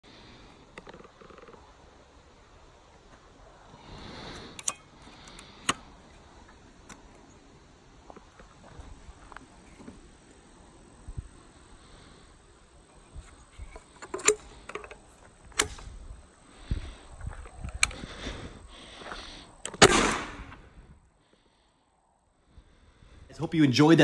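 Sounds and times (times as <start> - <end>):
outdoor background noise: 0.0 - 24.0.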